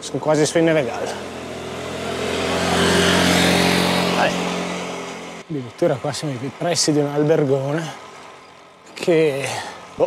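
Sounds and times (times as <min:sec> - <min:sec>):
motor scooter engine hum: 0:00.0 - 0:05.5.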